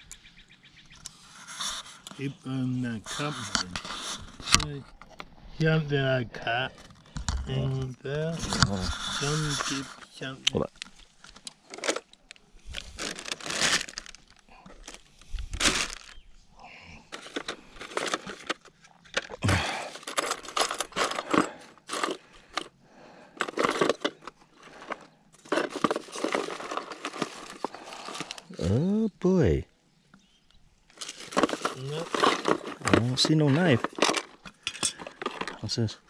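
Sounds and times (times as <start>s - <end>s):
plastic packaging rustling and crinkling: 6.7s - 16.2s, 17.1s - 22.7s, 23.4s - 28.7s, 30.9s - 35.9s.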